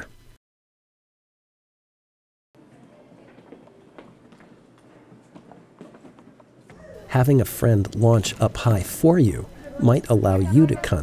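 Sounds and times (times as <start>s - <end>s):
light footsteps: 2.6s - 6.8s.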